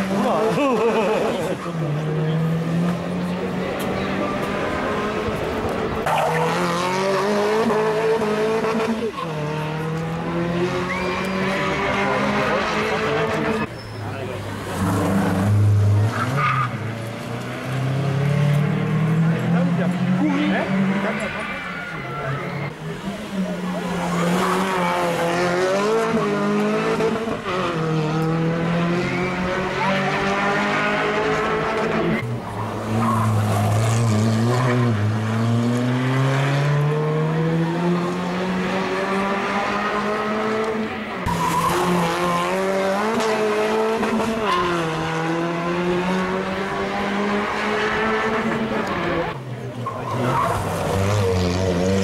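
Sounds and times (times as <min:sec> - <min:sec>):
rally car engines revving: 0:00.0 - 0:52.0.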